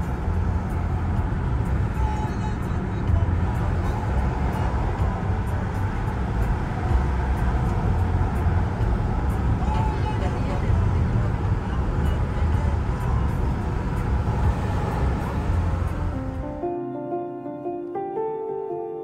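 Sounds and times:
vehicle cabin road rumble: 0:00.0 - 0:16.6.

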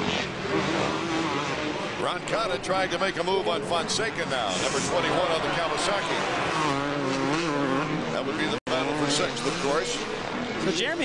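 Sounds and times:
dirt bike engines racing: 0:00.0 - 0:11.0.

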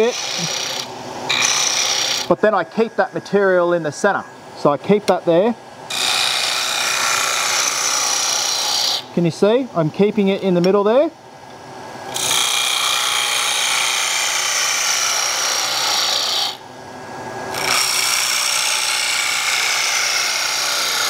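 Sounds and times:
gouge cutting wood on lathe: 0:00.0 - 0:03.8, 0:05.9 - 0:09.1, 0:12.1 - 0:16.6, 0:17.5 - 0:21.0.

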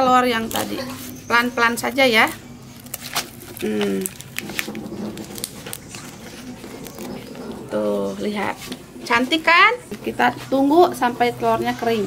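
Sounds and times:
leaves crinkling and crackling: 0:00.3 - 0:08.9.

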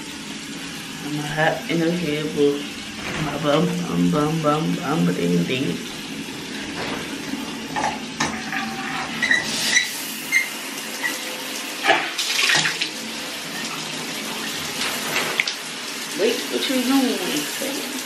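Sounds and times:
shower water spraying: 0:00.0 - 0:18.0.

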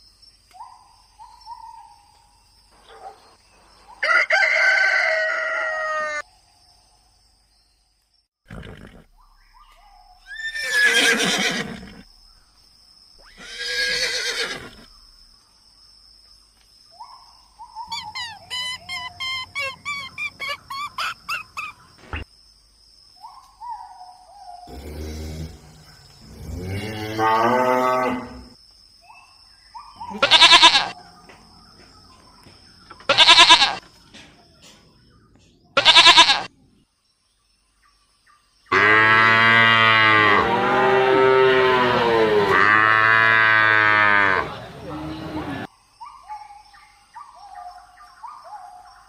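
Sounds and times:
rooster crowing: 0:04.0 - 0:06.2
horse whinnying: 0:08.5 - 0:09.1, 0:10.3 - 0:12.0, 0:13.2 - 0:14.9, 0:30.1 - 0:31.0, 0:33.1 - 0:33.8, 0:35.8 - 0:36.5.

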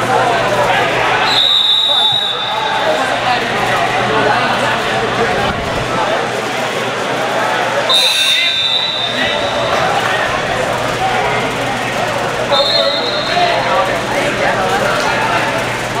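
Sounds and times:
gym chatter: 0:00.0 - 0:16.0
referee whistle blasts: 0:01.3 - 0:02.7, 0:07.9 - 0:09.8, 0:12.5 - 0:13.4.

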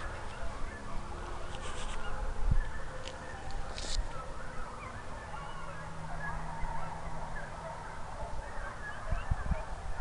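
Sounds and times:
distant hounds baying: 0:00.0 - 0:10.0.

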